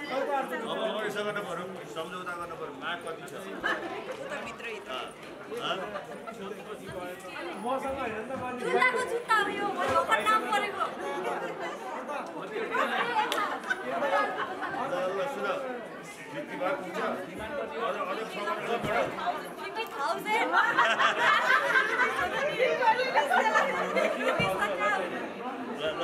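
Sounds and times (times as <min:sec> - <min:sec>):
chatter of many people: 0:00.0 - 0:26.0.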